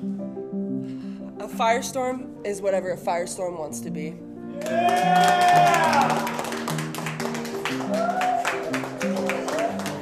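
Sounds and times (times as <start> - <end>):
background music notes: 0.0 - 10.0.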